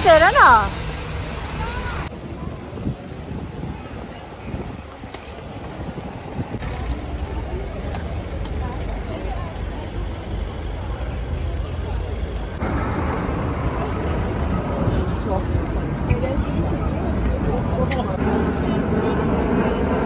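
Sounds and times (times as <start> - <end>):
passers-by talking: 0.0 - 20.0
passing traffic: 0.0 - 20.0
steady low rumble: 5.6 - 20.0.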